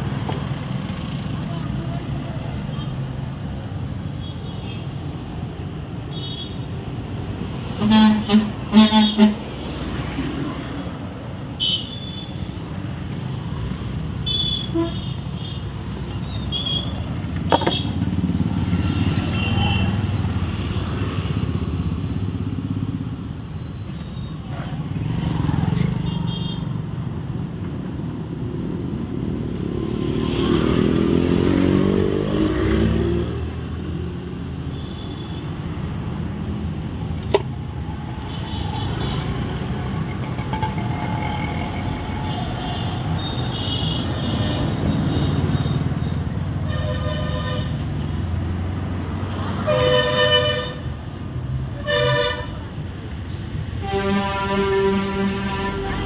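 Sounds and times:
motorcycles passing: 0:15.6 - 0:23.2, 0:24.5 - 0:34.6.

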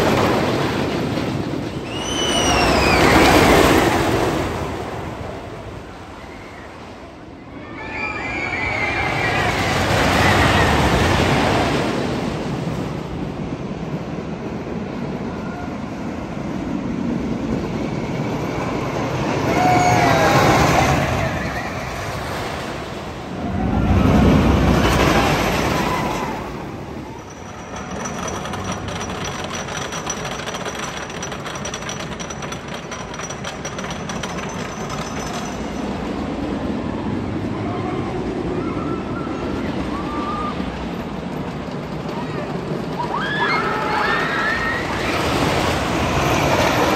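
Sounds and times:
roller coaster train on wooden track: 0:00.0 - 0:46.9.

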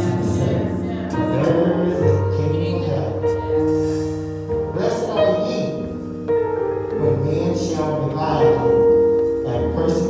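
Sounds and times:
organ chords: 0:00.0 - 0:10.0.

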